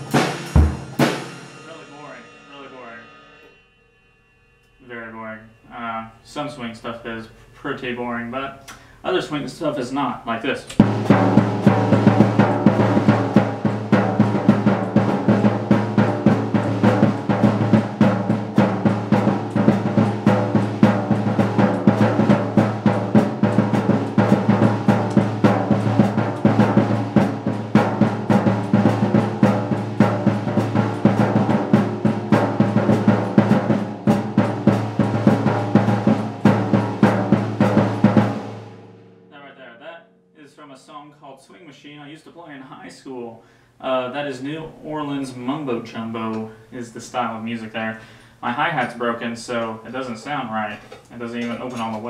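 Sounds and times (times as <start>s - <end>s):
drum kit swing groove: 0.0s - 3.5s, 8.7s - 39.3s, 44.3s - 52.0s.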